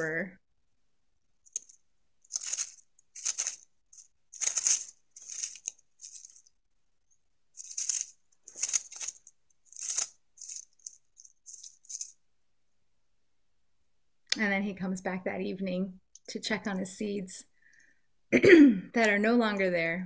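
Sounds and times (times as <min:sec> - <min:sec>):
animal rustling in dry leaves: 0:01.5 - 0:06.6, 0:07.5 - 0:12.2.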